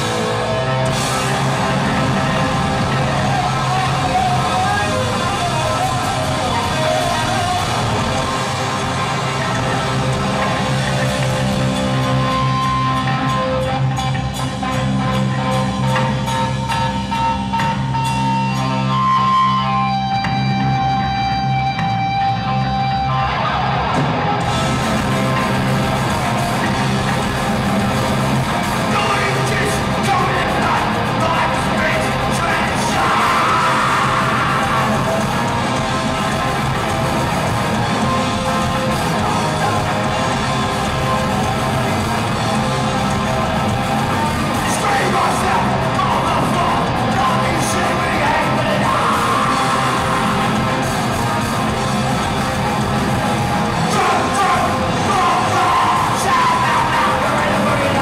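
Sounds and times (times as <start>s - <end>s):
shouted lead vocal: 0.0s - 10.8s, 28.1s - 36.9s, 38.6s - 51.7s, 53.3s - 58.0s
punk band playing: 0.0s - 58.0s.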